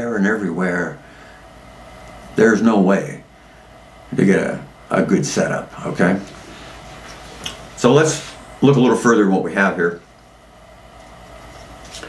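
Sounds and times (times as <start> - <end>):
faint room noise: 0.0 - 12.0
steady low hum: 0.0 - 12.0.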